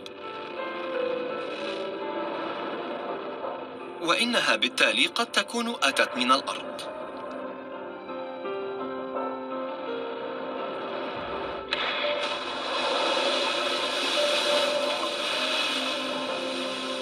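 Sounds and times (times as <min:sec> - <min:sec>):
background music with held tones: 0:00.0 - 0:17.0
loud rushing noise: 0:11.0 - 0:17.0
sharp crack: 0:11.3 - 0:17.0.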